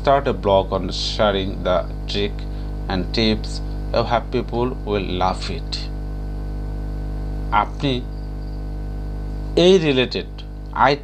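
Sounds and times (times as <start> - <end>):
person speaking: 0.0 - 5.9, 7.5 - 8.1, 9.6 - 11.0
electrical mains hum: 0.0 - 11.0.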